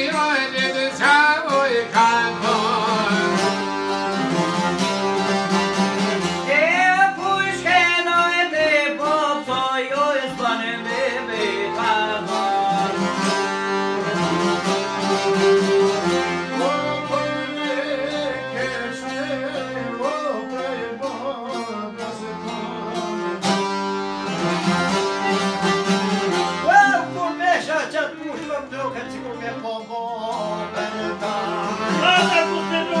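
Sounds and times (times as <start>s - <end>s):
accordion: 0.0s - 33.0s
lutes strummed and plucked: 0.0s - 33.0s
violin: 0.0s - 33.0s.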